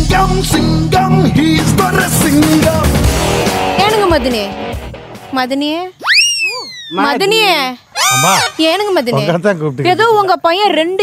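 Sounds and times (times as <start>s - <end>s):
comic swooping whistle effect: 6.0s - 7.0s, 8.0s - 8.6s.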